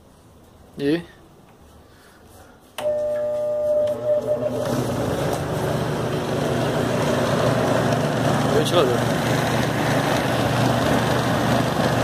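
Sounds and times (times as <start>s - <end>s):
electric fan humming: 2.6s - 12.0s.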